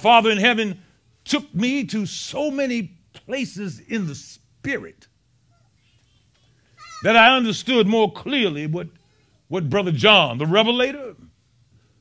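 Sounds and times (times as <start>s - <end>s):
man speaking: 6.9s - 11.3s.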